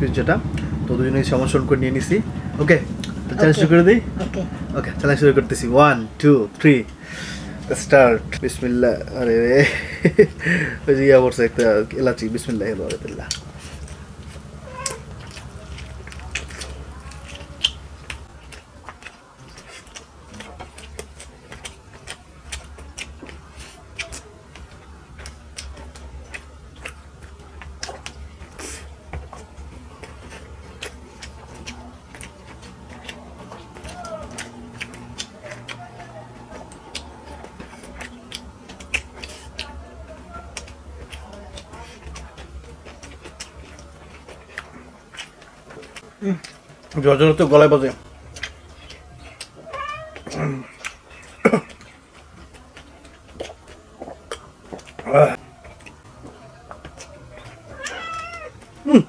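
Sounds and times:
low steady hum: 0.0s - 59.0s
chewing and mouth clicks: 0.4s - 59.0s.

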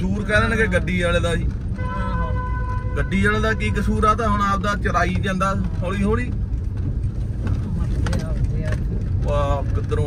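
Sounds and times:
car engine and tyres rumble: 0.0s - 10.0s.

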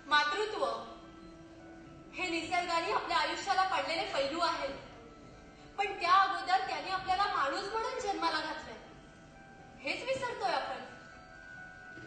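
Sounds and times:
woman speaking into a microphone: 0.0s - 1.0s, 5.8s - 8.8s, 9.8s - 10.9s
faint background music: 0.0s - 12.0s.

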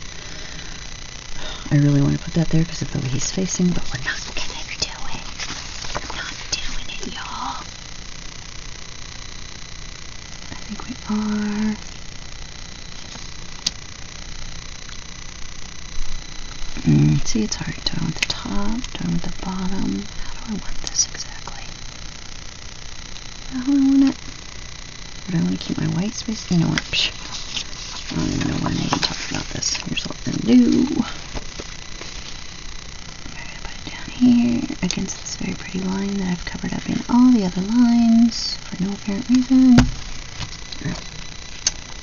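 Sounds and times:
low background hum: 0.0s - 42.0s
paper rustling: 5.3s - 6.3s, 27.2s - 29.8s
woman murmuring: 23.5s - 24.2s, 30.3s - 31.2s.

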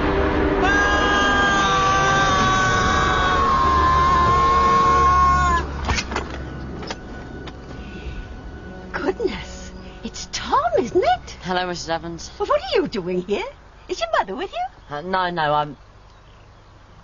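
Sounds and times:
high whine sliding down: 0.0s - 9.3s.

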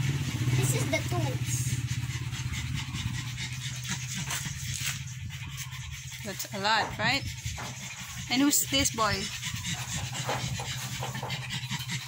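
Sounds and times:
dog panting: 0.0s - 12.0s
steady low hum: 0.0s - 12.0s.

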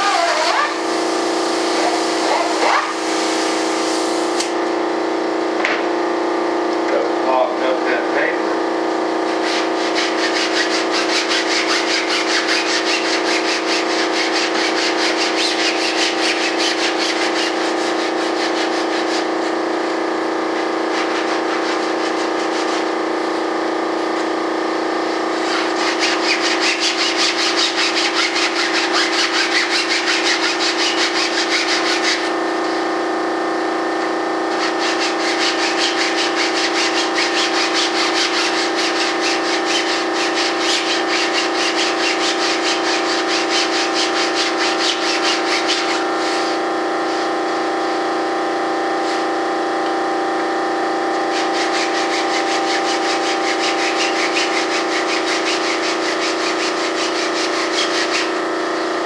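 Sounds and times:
wood rasping on sander belt: 0.0s - 0.9s, 9.3s - 19.5s, 25.4s - 32.4s, 34.5s - 46.6s, 51.1s - 58.6s
belt sander motor hum: 24.2s - 48.1s, 48.7s - 59.0s.

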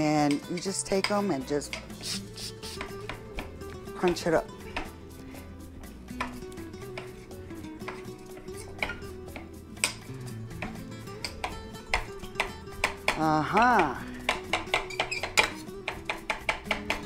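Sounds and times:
knife chopping on marble board: 7.9s - 17.0s.

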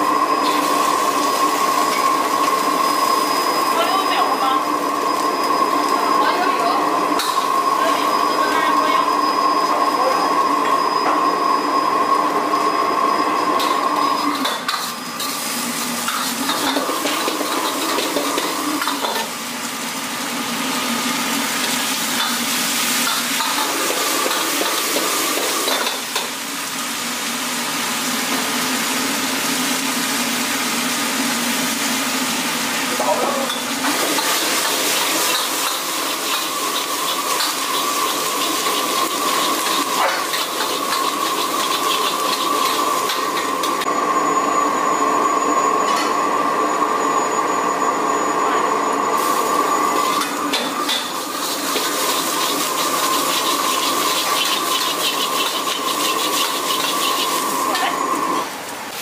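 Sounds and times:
oil sizzling in a wok: 0.0s - 48.2s, 48.9s - 59.0s
metal ladle scraping wok: 50.0s - 58.0s.

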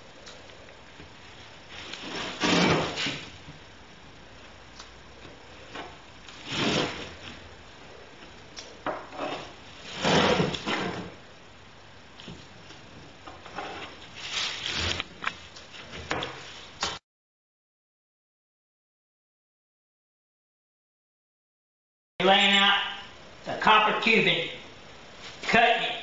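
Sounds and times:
metal straightedge scraping plywood: 2.0s - 3.2s, 6.4s - 7.1s, 9.1s - 11.1s.

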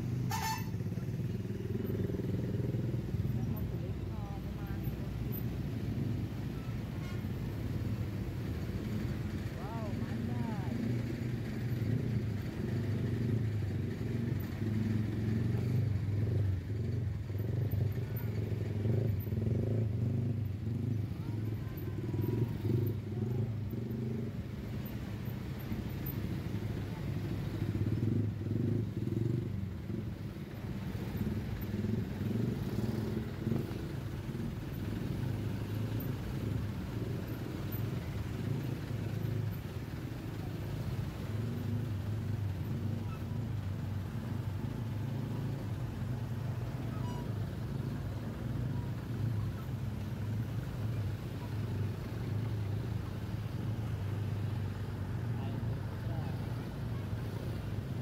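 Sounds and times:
motorcycles passing close: 0.0s - 58.0s
slow traffic engines: 0.0s - 58.0s.

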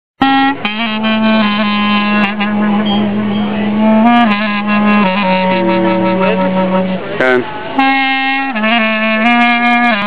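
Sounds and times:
saxophone holding low note: 0.2s - 10.0s.

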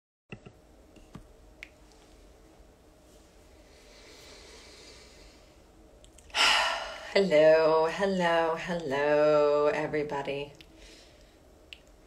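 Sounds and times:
faint room hum: 0.3s - 12.0s.

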